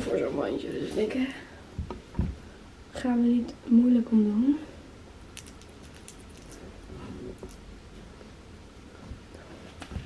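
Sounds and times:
jewellery clicking: 5.4s - 6.7s, 7.4s - 7.7s.

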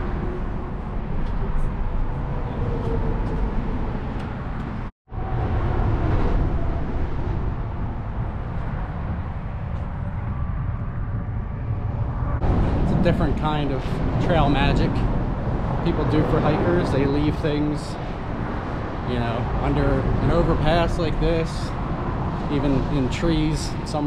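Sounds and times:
freeway traffic rumble: 0.0s - 24.0s.

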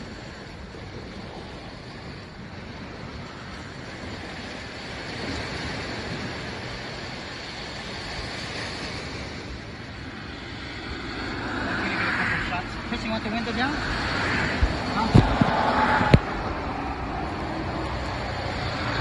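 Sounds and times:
ocean surf washing ashore: 0.0s - 19.0s.

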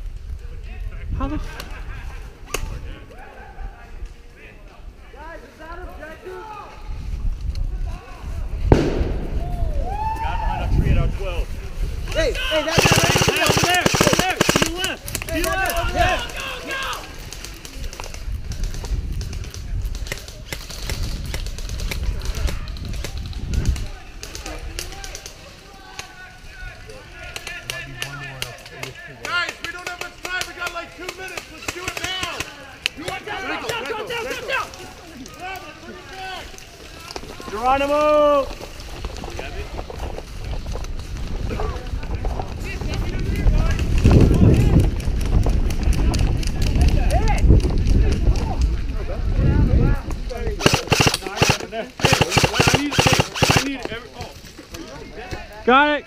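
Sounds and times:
low wind rumble on microphone: 0.0s - 6.0s, 6.6s - 12.7s, 15.0s - 24.9s, 37.2s - 50.6s
airsoft guns clicking: 12.7s - 16.5s, 50.6s - 54.0s.

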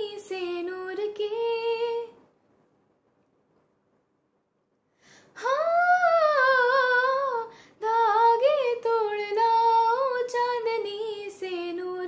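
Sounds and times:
girl singing unaccompanied: 0.0s - 2.2s, 5.4s - 12.0s.

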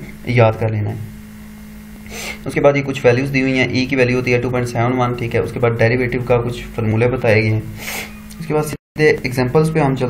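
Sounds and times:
man speaking: 0.0s - 1.1s, 2.4s - 10.0s
audible breath: 2.0s - 2.4s, 7.7s - 8.2s.

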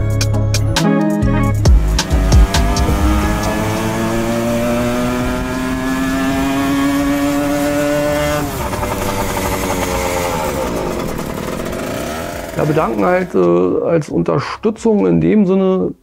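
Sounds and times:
scooter engine passing by: 2.0s - 13.3s.

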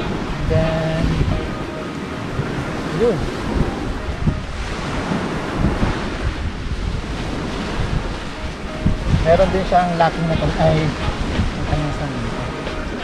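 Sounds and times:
waves breaking on shore: 0.0s - 13.0s
wind buffeting microphone: 0.0s - 13.0s.

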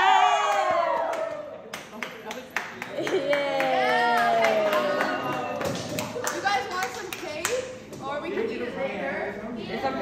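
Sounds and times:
hand claps: 0.5s - 8.0s.

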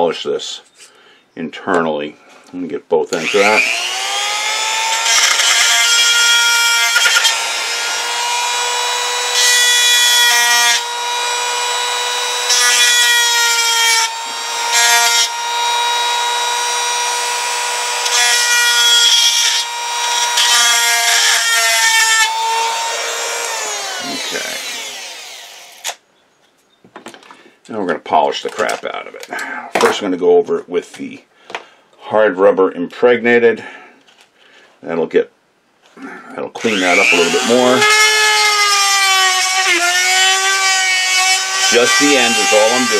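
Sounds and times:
rotary tool grinding whine: 3.2s - 26.0s, 36.6s - 42.9s.

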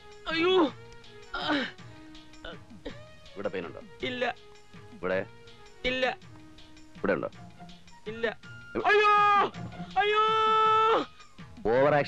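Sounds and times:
man's high-pitched cry: 8.8s - 11.2s.

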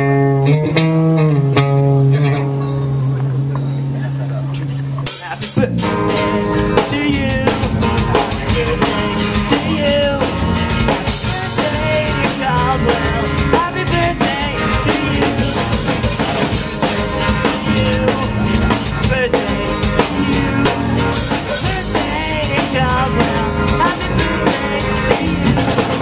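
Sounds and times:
low bass guitar note: 0.0s - 10.9s
rock band playing: 0.0s - 26.0s.

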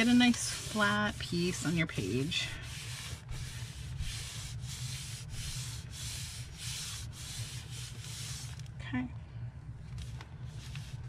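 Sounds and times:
hands rubbing paper: 0.0s - 8.7s, 10.0s - 11.0s.

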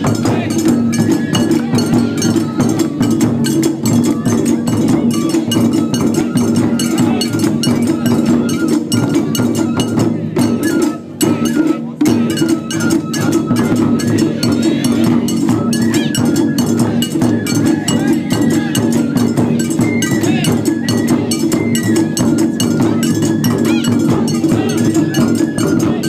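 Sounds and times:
high bamboo flute melody: 0.0s - 26.0s
taiko drums struck in rhythm: 0.0s - 26.0s.

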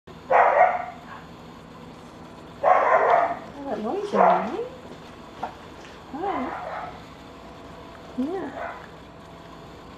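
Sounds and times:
dog barking: 0.3s - 1.3s, 2.6s - 3.4s, 4.1s - 4.6s, 6.4s - 7.0s, 8.5s - 8.9s.

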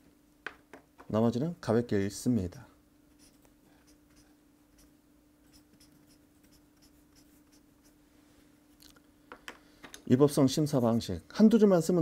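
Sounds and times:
faint steady hum: 0.0s - 12.0s
highlighter scratching on paper: 3.2s - 8.0s.

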